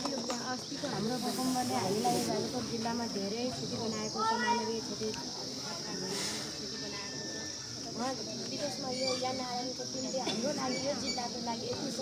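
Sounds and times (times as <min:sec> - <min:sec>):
steady high-pitched hiss: 0:00.0 - 0:12.0.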